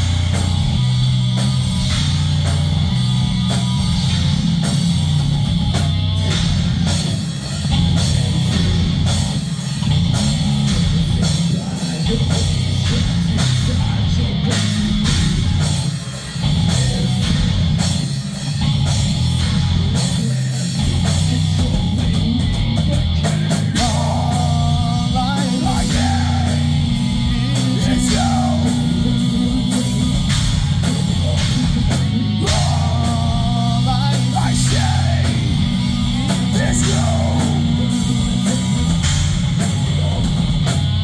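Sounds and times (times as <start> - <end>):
hard rock band playing: 0.0 - 41.0
person singing: 10.7 - 15.4, 19.9 - 39.0.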